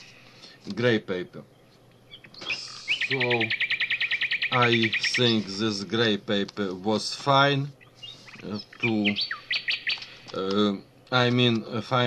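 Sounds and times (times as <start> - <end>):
small bird trilling: 1.6 - 5.6, 7.8 - 10.4.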